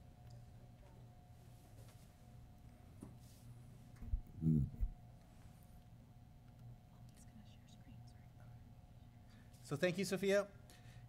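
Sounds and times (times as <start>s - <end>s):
low room hum: 0.0s - 11.0s
faint whispered sounds: 6.5s - 9.7s.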